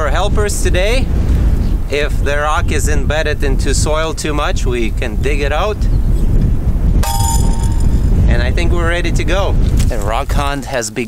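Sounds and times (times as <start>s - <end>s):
wind on microphone: 0.0s - 10.7s.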